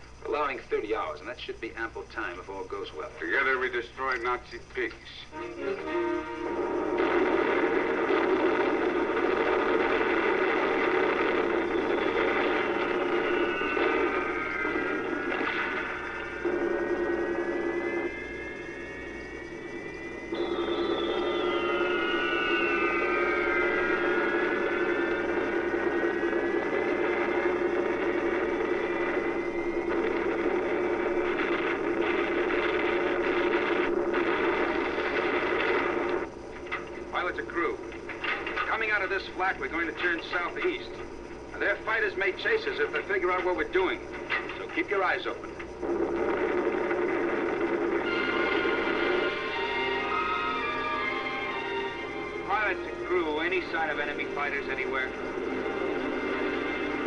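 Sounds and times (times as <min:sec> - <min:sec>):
drone of piston engines: 0:00.0 - 0:57.0
climbing whistling tones: 0:19.2 - 0:25.2
whistles sliding down in pitch: 0:19.8 - 0:25.1.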